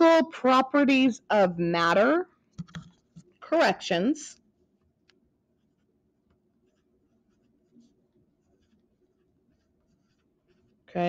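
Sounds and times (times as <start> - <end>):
pen scratching on paper: 6.6 - 10.8.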